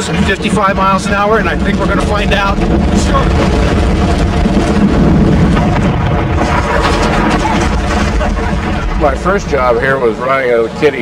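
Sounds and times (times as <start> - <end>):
roller coaster rumbling on track: 0.0 - 11.0
wind on microphone: 0.0 - 11.0.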